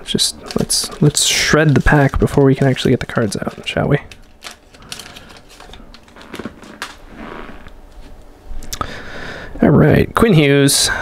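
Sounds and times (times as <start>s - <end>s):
foil wrapper tearing and crinkling: 0.2s - 7.8s.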